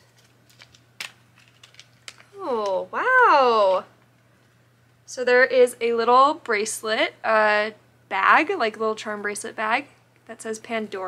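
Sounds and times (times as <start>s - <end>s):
packaging rustling: 0.0s - 2.4s.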